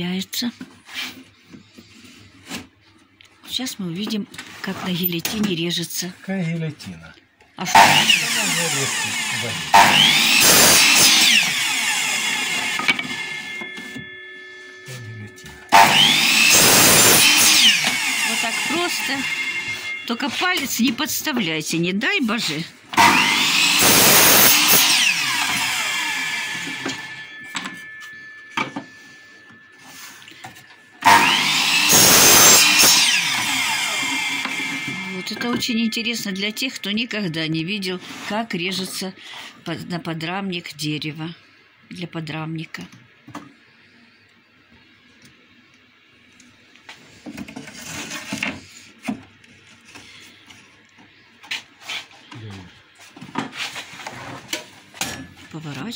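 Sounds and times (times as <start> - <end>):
miter saw cutting wood: 7.7 - 13.9, 15.2 - 20.7, 22.9 - 28.8, 31.0 - 36.6.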